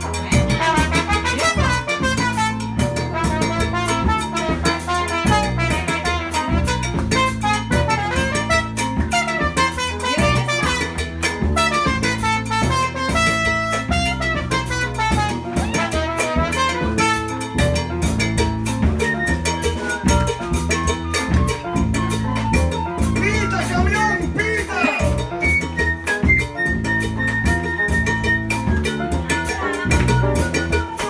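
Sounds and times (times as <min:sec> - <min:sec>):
drum kit and hand percussion: 0:00.0 - 0:31.0
latin jazz band playing: 0:00.0 - 0:31.0
brass lead line: 0:00.3 - 0:18.0.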